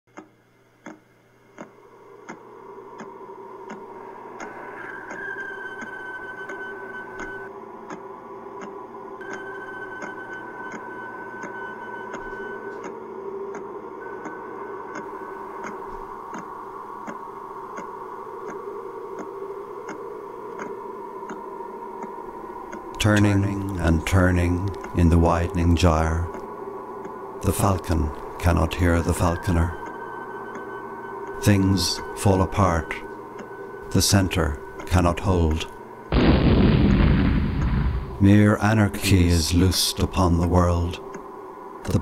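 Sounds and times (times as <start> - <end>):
electronic ticks: 0.1 - 2.4, 3.0 - 21.4, 22.0 - 35.8
sustained drone: 1.7 - 42.0.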